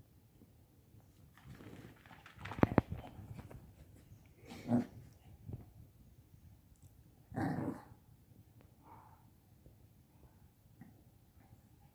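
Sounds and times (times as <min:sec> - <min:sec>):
puppy growling softly: 0:04.4 - 0:05.4.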